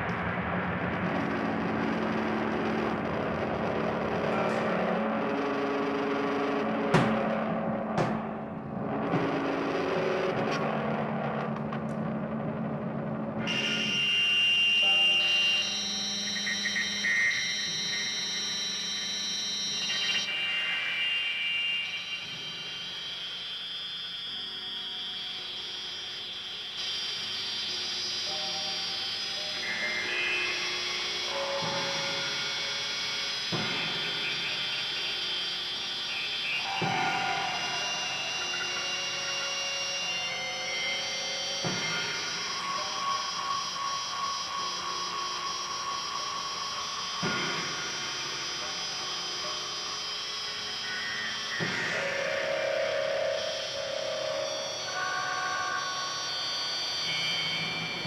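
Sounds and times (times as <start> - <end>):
sustained held tones: 13.4 - 58.0.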